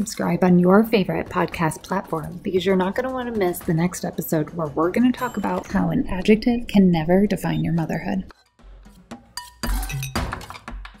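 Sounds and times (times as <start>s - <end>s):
ringing tone: 5.2s - 6.8s.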